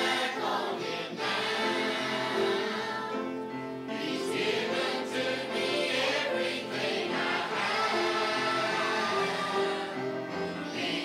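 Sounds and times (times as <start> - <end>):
choir singing gospel song: 0.0 - 11.0.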